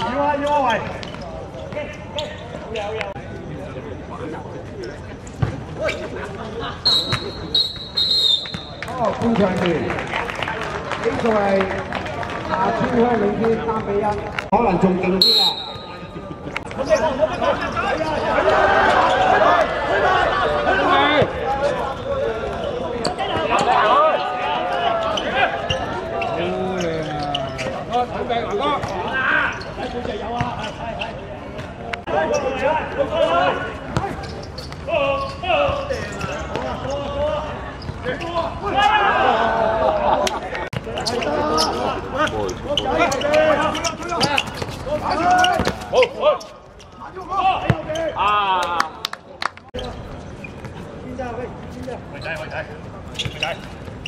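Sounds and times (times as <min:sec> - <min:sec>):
people calling out and chattering: 0:00.0 - 0:54.0
football kicked and bouncing: 0:05.4 - 0:05.7, 0:44.2 - 0:45.9.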